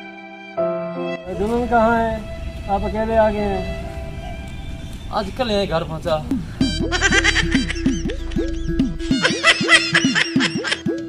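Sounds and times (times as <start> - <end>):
background music with swooping bass: 6.1 - 11.0
high-pitched laughter: 6.8 - 11.0.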